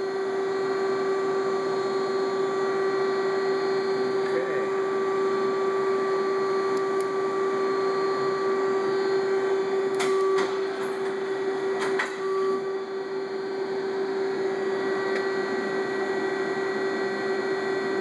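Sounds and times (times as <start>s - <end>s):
machine humming: 0.0s - 18.0s.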